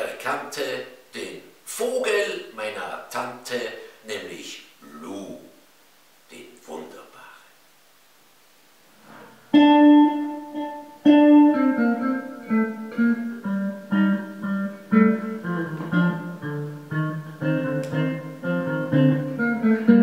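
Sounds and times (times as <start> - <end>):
electric bass guitar solo: 9.5 - 20.0.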